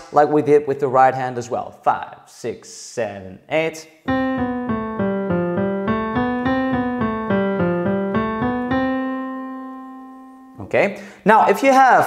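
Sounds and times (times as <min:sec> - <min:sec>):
digital piano scale: 0:04.1 - 0:10.7.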